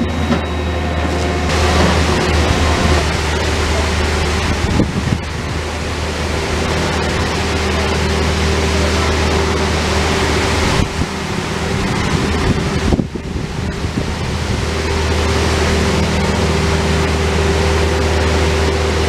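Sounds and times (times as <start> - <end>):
diesel engine running: 0.0 - 19.0.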